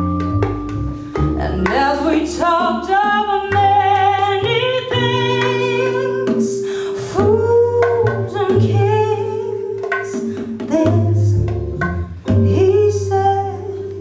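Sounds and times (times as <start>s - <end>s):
jazz ensemble playing: 0.0s - 14.0s.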